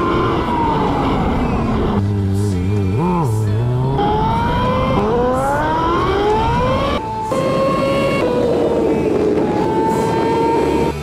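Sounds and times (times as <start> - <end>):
motorcycle engine: 0.0 - 11.0
wind and road noise: 0.0 - 11.0.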